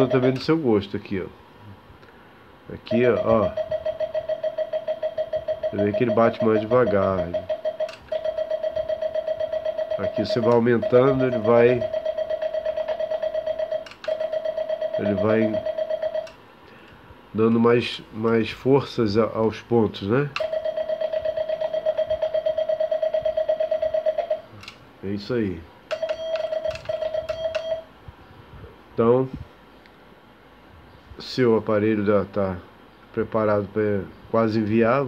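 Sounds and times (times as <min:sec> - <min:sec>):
telegraph sidetone beep: 0:00.0 - 0:00.5, 0:02.9 - 0:16.4, 0:20.4 - 0:24.5, 0:25.9 - 0:27.9
rapid morse code dots: 0:00.0 - 0:00.6, 0:02.8 - 0:16.4, 0:20.3 - 0:24.5, 0:25.9 - 0:27.9
telegraph key clicks: 0:07.4 - 0:08.4, 0:13.8 - 0:14.3, 0:25.9 - 0:27.8.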